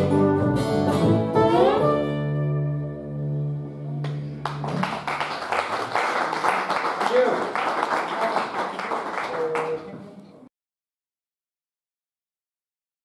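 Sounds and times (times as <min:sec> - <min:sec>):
acoustic guitar and upright bass: 0:00.0 - 0:04.8
audience applauding: 0:04.0 - 0:10.2.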